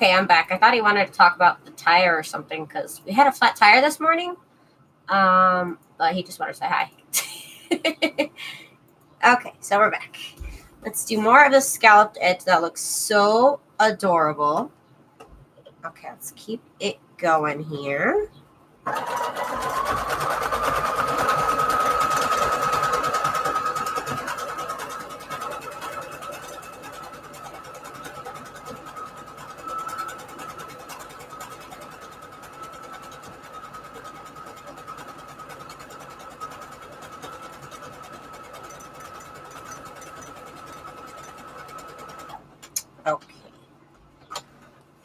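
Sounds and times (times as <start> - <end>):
sewing machine running: 18.9 - 42.5
sewing machine clicks: 18.9 - 42.8.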